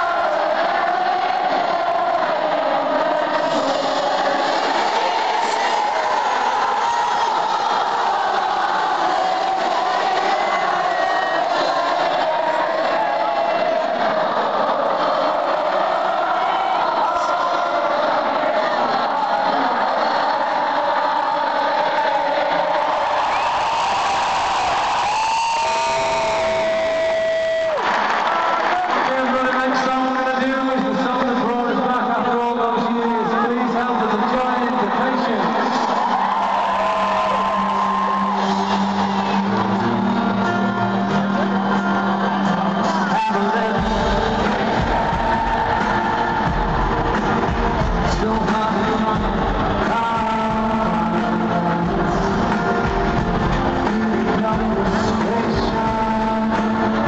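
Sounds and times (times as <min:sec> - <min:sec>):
stadium crowd singing and cheering: 0:00.0 - 0:57.0.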